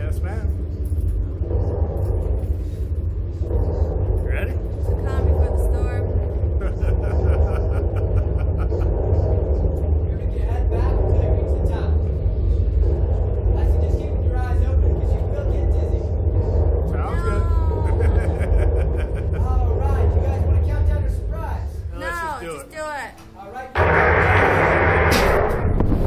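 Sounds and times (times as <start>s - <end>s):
low rumble: 0.0s - 22.8s, 23.8s - 26.0s
indistinct voices: 1.2s - 23.2s.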